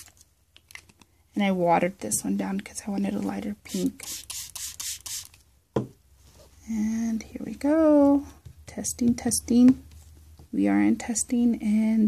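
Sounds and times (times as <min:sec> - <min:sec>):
spray bottle hissing pumps: 0:03.8 - 0:05.4.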